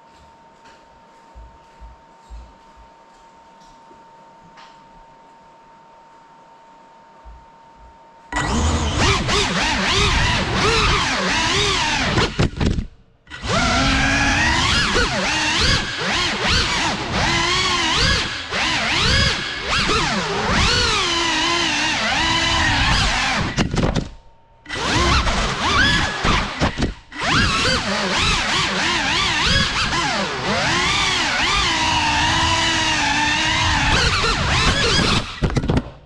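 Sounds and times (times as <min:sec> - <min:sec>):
quadcopter motors whining: 0:08.4 - 0:12.6, 0:13.3 - 0:23.6, 0:24.7 - 0:35.5.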